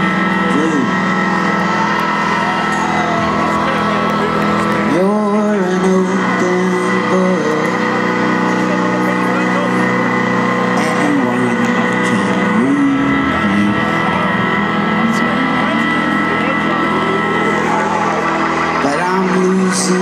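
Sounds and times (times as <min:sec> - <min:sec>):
bending lead guitar line: 0:00.0 - 0:20.0
live rock band playing: 0:00.0 - 0:20.0.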